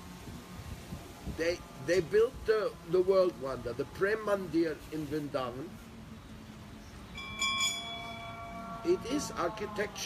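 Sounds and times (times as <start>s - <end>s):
low background hum: 0.0s - 10.0s
bell ringing: 7.1s - 9.5s.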